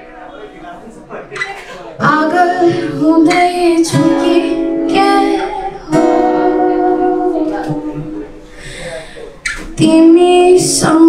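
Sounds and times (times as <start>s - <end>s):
soft acoustic guitar: 0.0s - 11.0s.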